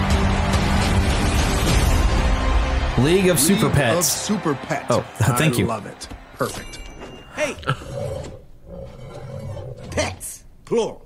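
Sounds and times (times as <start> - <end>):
animal growl: 7.6 - 10.0.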